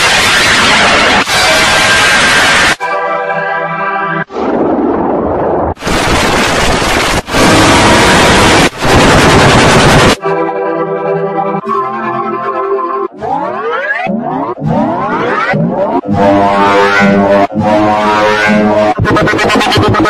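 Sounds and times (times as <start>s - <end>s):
harsh noise blast: 0.0s - 3.1s, 4.0s - 10.3s.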